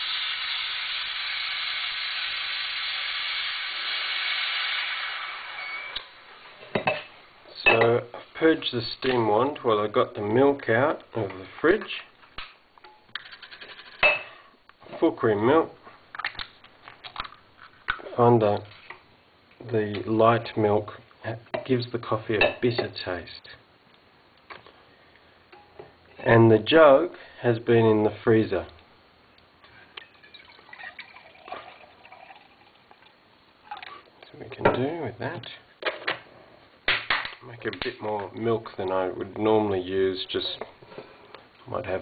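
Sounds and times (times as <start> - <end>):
milk trickling into jug: 30.0 - 33.9.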